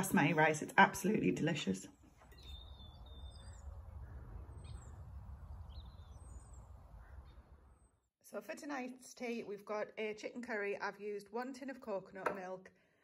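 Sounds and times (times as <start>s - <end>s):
faint bird chirps: 2.2s - 8.1s.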